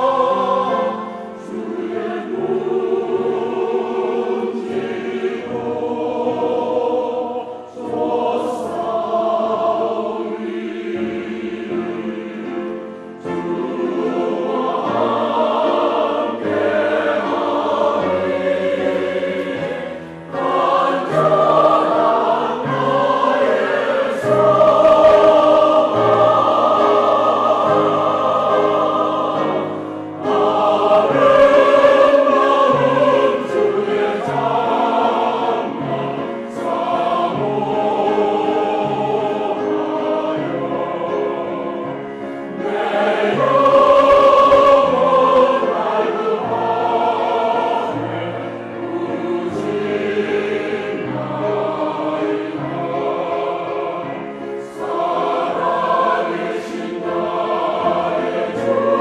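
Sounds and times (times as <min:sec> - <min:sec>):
choir singing an anthem: 0:00.0 - 0:59.0
grand piano accompaniment: 0:00.0 - 0:59.0.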